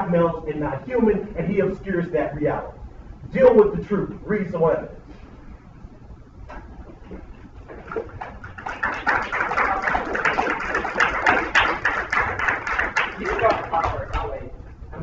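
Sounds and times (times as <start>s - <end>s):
man speaking rapidly: 0.0s - 5.0s, 13.2s - 14.6s.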